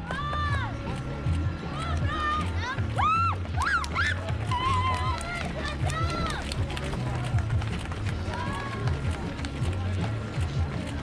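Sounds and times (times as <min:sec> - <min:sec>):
runners' footfalls on pavement: 0:00.0 - 0:11.0.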